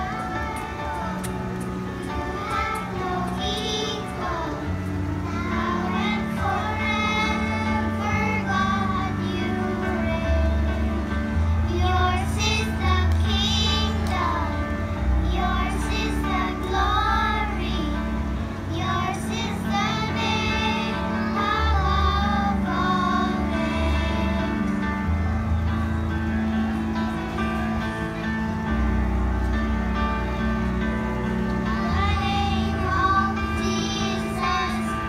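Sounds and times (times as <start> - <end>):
instrumental accompaniment with bass: 0.0 - 35.0
children singing together: 2.0 - 25.3, 31.5 - 35.0.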